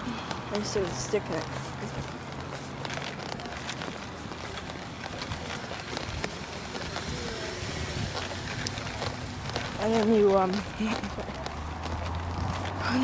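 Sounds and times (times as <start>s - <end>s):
handling rustle: 0.3s - 13.0s
wind on microphone: 5.2s - 10.0s, 12.0s - 13.0s.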